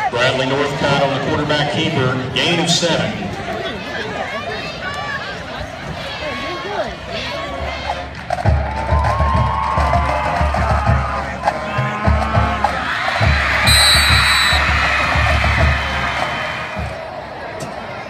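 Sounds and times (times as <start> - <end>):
crowd cheering: 3.5 - 18.0
marching band playing: 10.2 - 16.9
high whistle blast: 13.6 - 14.9.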